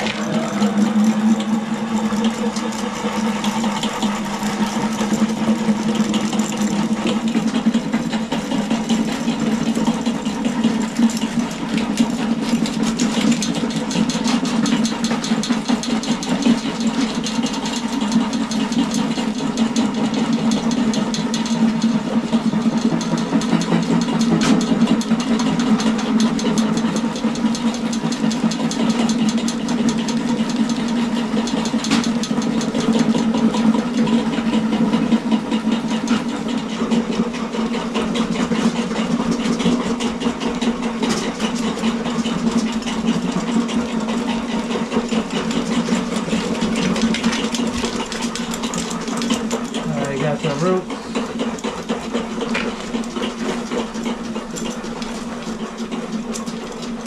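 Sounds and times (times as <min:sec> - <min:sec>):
drain cleaning machine running: 0:00.0 - 0:57.0.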